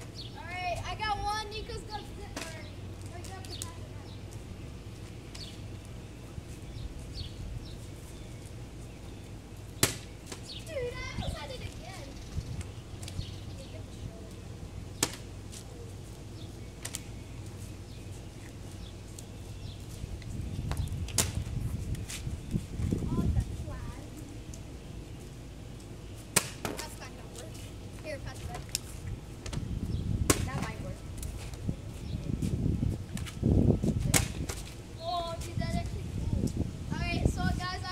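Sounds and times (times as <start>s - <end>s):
outdoor background noise: 0.0s - 37.9s
steady low rumble: 0.0s - 37.9s.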